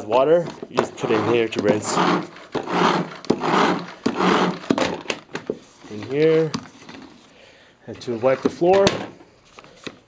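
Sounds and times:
spin mop whirring: 0.4 - 7.3.

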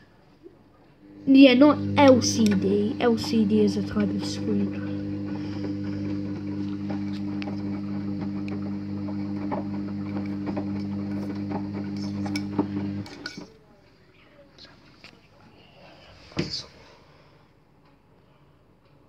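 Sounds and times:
washing machine motor humming: 1.0 - 13.4.

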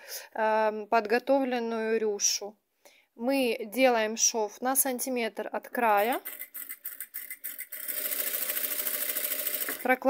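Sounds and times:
sewing machine running: 6.0 - 10.0.

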